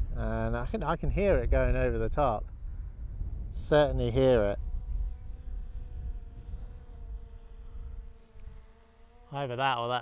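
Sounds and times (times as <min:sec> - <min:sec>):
low wind rumble on microphone: 0:00.0 - 0:08.7.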